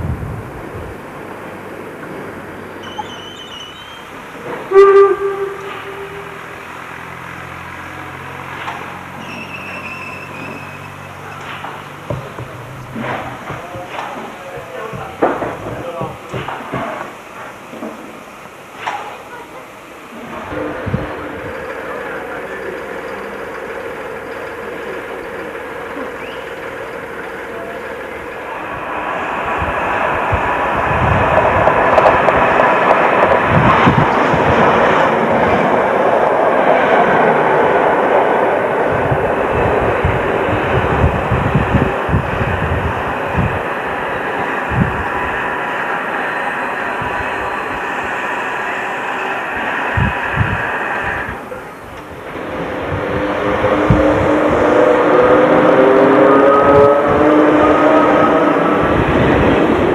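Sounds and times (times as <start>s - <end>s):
train passing: 0.0s - 59.9s
faint held tone: 4.7s - 6.6s.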